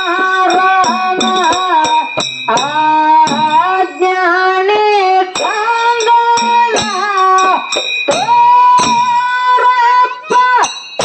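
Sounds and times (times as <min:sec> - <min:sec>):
drum strokes: 0:00.0 - 0:04.2, 0:05.3 - 0:09.5
person singing through microphone: 0:00.0 - 0:10.8
small hand cymbals: 0:00.0 - 0:11.0.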